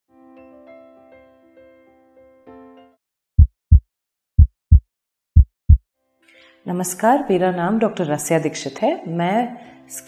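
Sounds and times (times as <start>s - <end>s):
heartbeat thumps: 3.4s - 5.8s.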